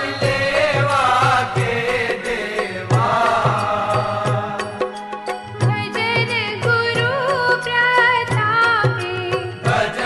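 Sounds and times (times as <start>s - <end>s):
chanting vocal melody: 0.0s - 6.0s, 9.4s - 10.0s
instrumental accompaniment: 0.0s - 10.0s.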